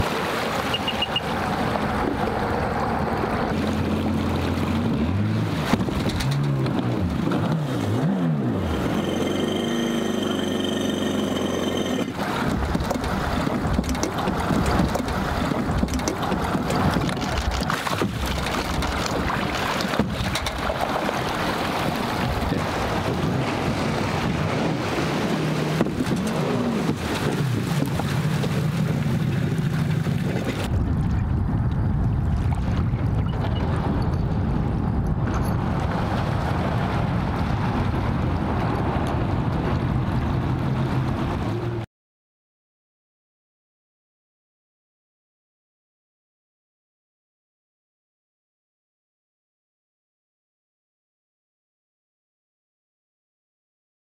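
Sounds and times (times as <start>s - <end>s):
water splashing: 0.0s - 9.0s, 11.0s - 31.4s
jet ski engines idling and revving: 0.6s - 21.0s, 21.7s - 30.7s.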